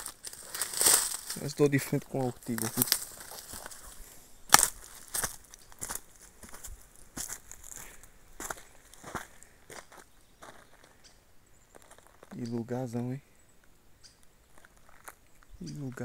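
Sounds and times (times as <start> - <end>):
twig cracking: 0.0 - 1.5, 2.4 - 3.9, 4.5 - 6.0
footsteps on dry leaves: 0.0 - 11.0, 11.7 - 12.5.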